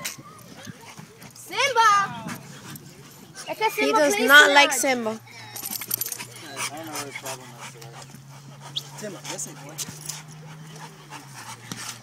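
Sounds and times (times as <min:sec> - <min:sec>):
paws clicking and splashing: 0:05.6 - 0:12.0.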